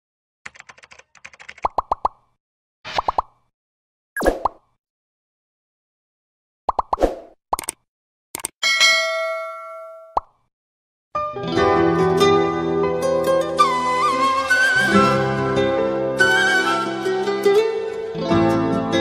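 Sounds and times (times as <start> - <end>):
quick clicks and pitched pops: 1.4 - 3.5, 6.7 - 8.6
bell-like ding: 8.6 - 10.2.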